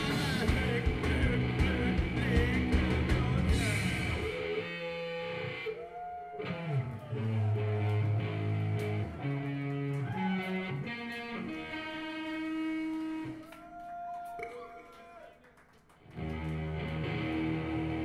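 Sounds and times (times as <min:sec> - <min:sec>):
electric guitar through amplifier: 0:00.0 - 0:13.4, 0:16.1 - 0:18.0.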